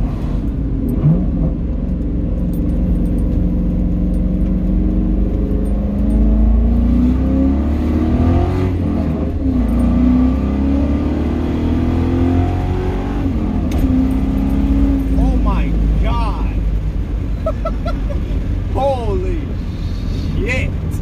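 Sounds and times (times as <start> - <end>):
car engine accelerating: 0.0 - 21.0.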